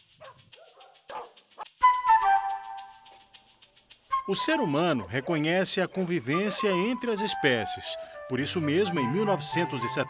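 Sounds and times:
dog barking: 0:00.2 - 0:01.4, 0:05.0 - 0:06.9
music with fast ticking beat: 0:01.4 - 0:10.0.

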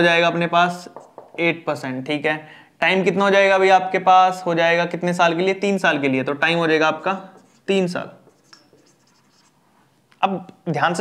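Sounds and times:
marker pen writing on whiteboard: 0:00.7 - 0:01.6, 0:07.3 - 0:09.6.

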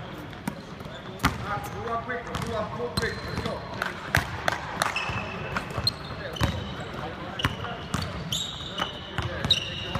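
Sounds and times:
sneaker squeaks: 0:00.0 - 0:03.7, 0:04.9 - 0:09.9
basketballs bouncing on hardwood: 0:02.3 - 0:03.6.

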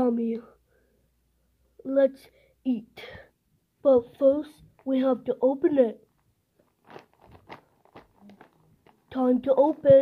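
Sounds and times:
plastic bag crinkling: 0:06.1 - 0:10.0.

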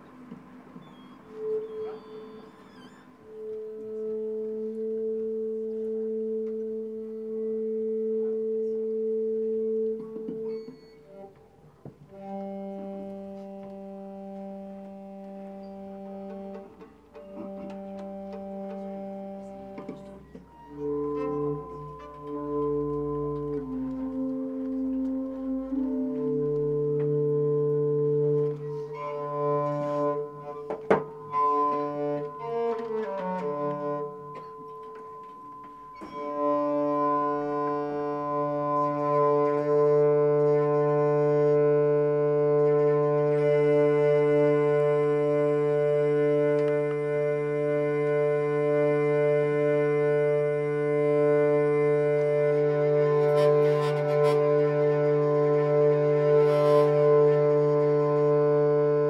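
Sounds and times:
folk strings drone chord: 0:12.1 - 0:59.0
higher melody notes: 0:12.1 - 0:59.0.

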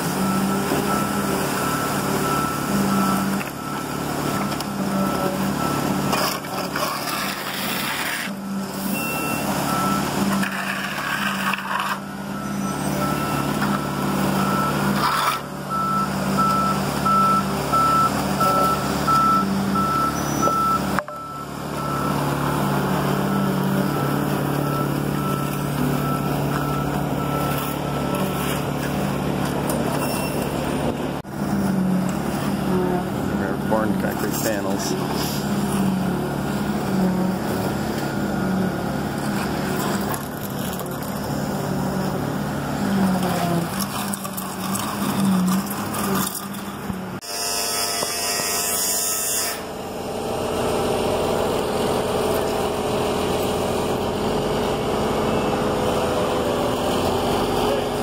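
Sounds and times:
concrete pouring down chute: 0:00.0 - 0:20.1
reversing alarm beeping: 0:00.0 - 0:30.5
diesel engine running: 0:00.0 - 0:48.7, 0:49.6 - 0:58.0.

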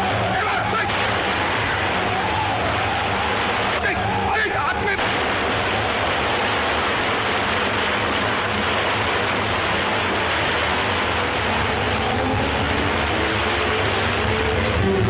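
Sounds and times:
loud rushing noise: 0:00.0 - 0:15.0.

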